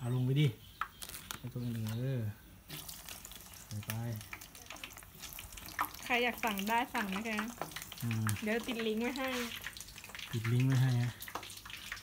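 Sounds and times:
food frying in hot oil: 0:02.7 - 0:12.0.

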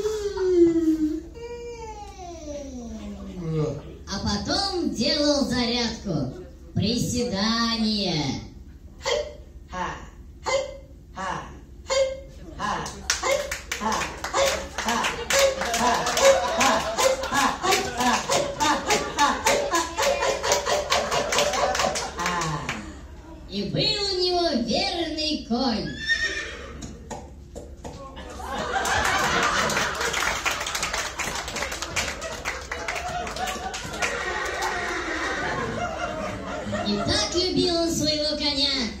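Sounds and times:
audience clapping: 0:12.8 - 0:22.9, 0:27.1 - 0:35.4
horse whinny: 0:25.9 - 0:27.0.

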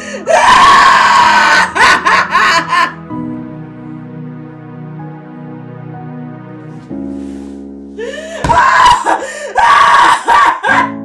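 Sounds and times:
woman wailing and sobbing: 0:00.0 - 0:03.0, 0:08.0 - 0:11.0
soft sad background music: 0:00.0 - 0:11.0.

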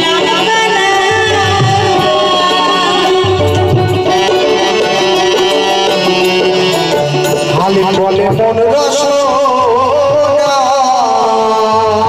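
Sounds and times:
sustained accompanying tones: 0:00.0 - 0:09.2
man singing: 0:00.0 - 0:12.0.

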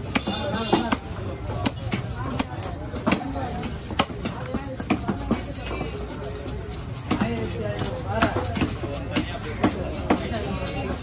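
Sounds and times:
knife chopping on wooden block: 0:00.0 - 0:05.5, 0:07.0 - 0:10.4.

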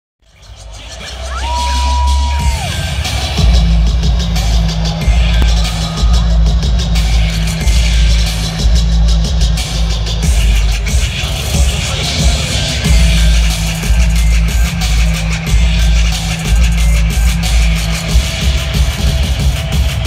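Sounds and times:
heavy bass line: 0:00.2 - 0:20.0
loud electronic dance music: 0:00.2 - 0:20.0.

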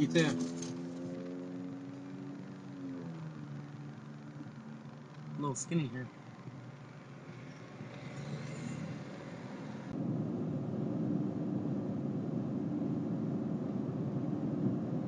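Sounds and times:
low hum: 0:00.0 - 0:15.0
road and engine noise in truck cab: 0:00.0 - 0:15.0.

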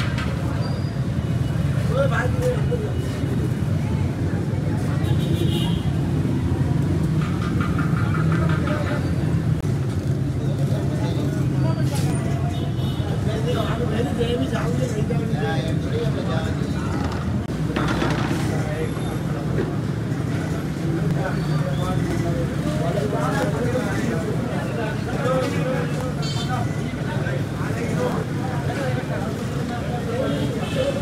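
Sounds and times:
low rumble of traffic: 0:00.0 - 0:31.0.

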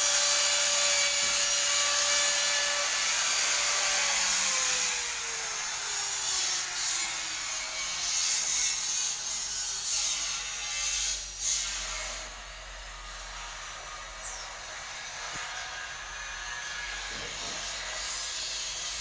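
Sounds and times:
electric drill into wood: 0:00.0 - 0:08.9
workshop background noise: 0:00.0 - 0:19.0.

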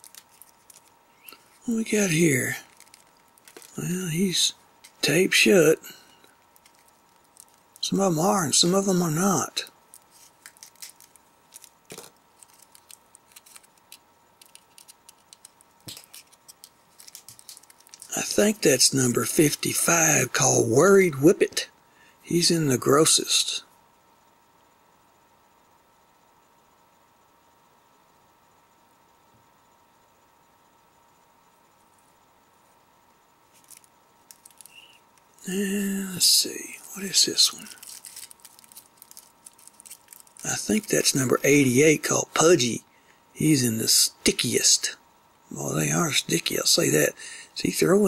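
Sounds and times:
plastic packet crinkling: 0:00.0 - 0:04.0, 0:06.2 - 0:07.9, 0:09.9 - 0:18.2, 0:33.5 - 0:35.0, 0:37.5 - 0:41.4.

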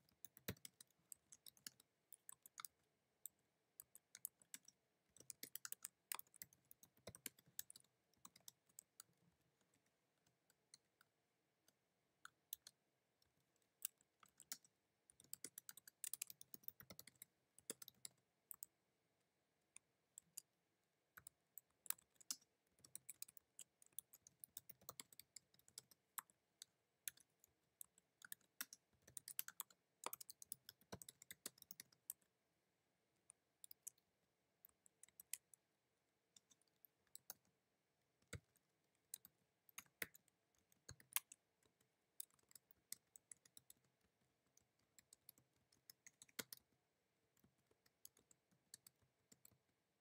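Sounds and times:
faint typing on computer keyboard: 0:00.0 - 0:50.0.

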